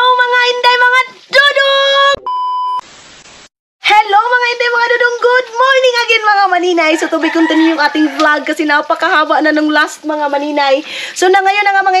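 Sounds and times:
tv static hiss: 0.0s - 6.7s
test-tone beep: 2.2s - 2.8s.

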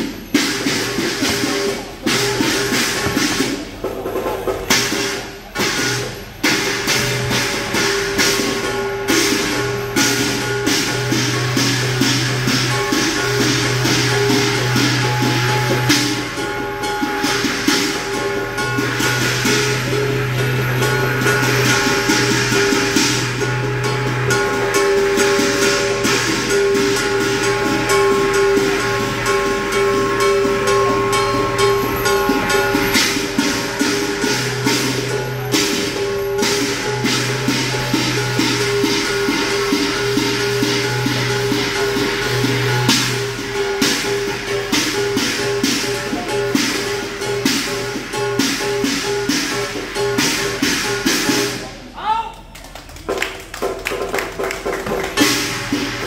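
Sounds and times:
hand cymbals clashing: 0.0s - 52.0s, 54.2s - 56.0s
drum beating fast rhythm: 0.0s - 56.0s.

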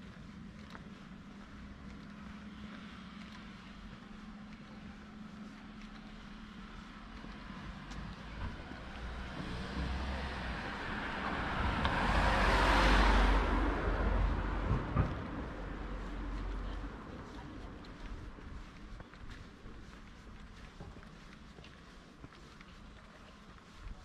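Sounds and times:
car passing by: 6.4s - 17.9s.

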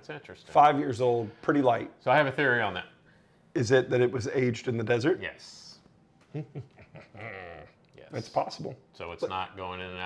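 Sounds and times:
man laughing softly: 6.3s - 7.8s.

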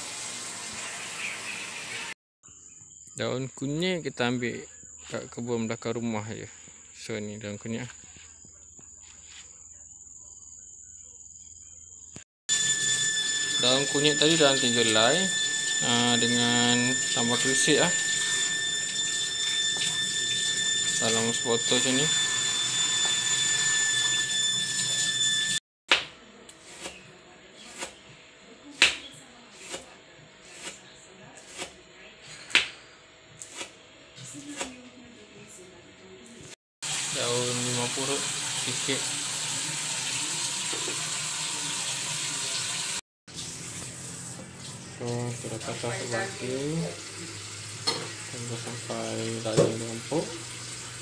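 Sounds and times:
faint high whine: 12.5s - 25.6s.

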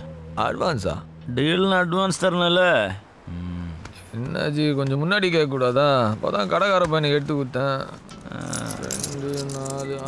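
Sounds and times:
jingling rattling percussion: 8.1s - 10.0s.

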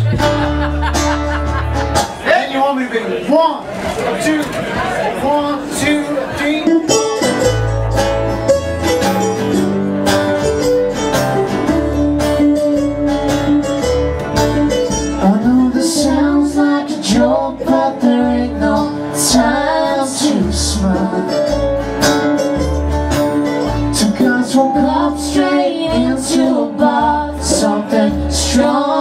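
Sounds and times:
plucked double bass: 0.0s - 2.3s, 6.6s - 29.0s
strummed acoustic guitars: 0.0s - 2.3s, 5.8s - 29.0s.

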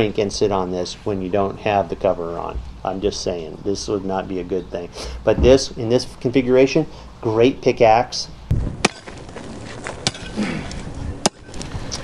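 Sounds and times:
tool striking hard stony dirt: 8.6s - 9.2s, 9.8s - 11.5s.

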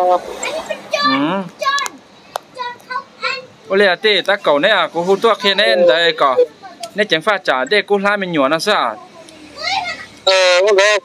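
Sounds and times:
man talking: 3.7s - 9.0s, 10.3s - 11.0s
high-pitched voice: 5.5s - 6.6s.

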